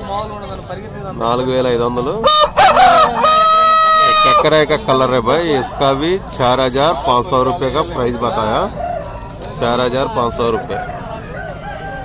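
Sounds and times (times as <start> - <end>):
rooster crowing: 2.2 - 4.4, 10.3 - 12.0.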